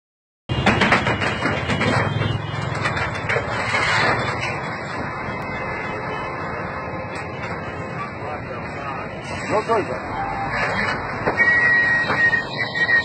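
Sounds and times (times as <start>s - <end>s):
vehicle engine rumbling: 0.5s - 13.0s.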